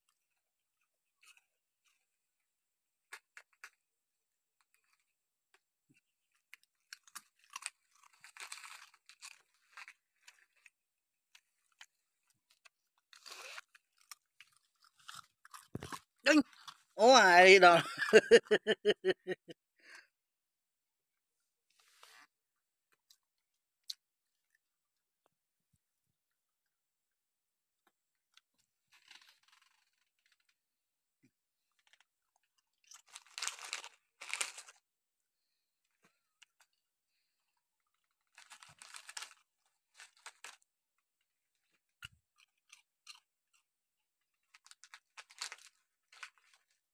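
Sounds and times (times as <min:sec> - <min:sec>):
dogs crunching cake: 0:06.4 - 0:16.9, 0:31.7 - 0:34.8, 0:38.0 - 0:40.7, 0:44.4 - 0:46.8
dogs chewing and crunching: 0:06.6 - 0:10.8, 0:12.5 - 0:16.9.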